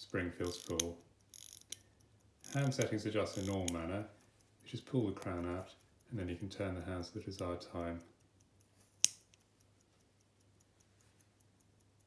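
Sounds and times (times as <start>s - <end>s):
pocket watch ticking: 0.0s - 12.0s
sharp click handling watch: 0.3s - 12.0s.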